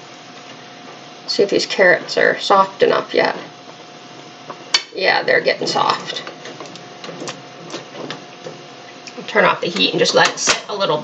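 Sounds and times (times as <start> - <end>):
boiling water hissing: 0.0 - 11.0.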